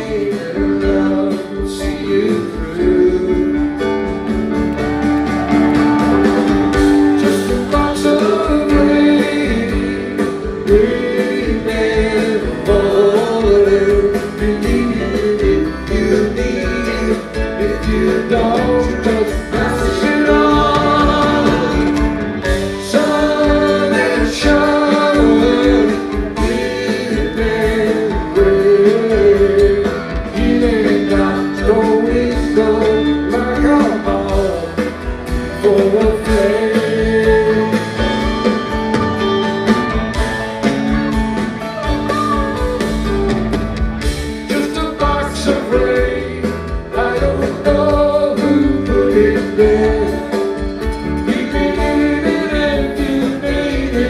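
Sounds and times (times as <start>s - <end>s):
rock band playing: 0.0s - 54.0s.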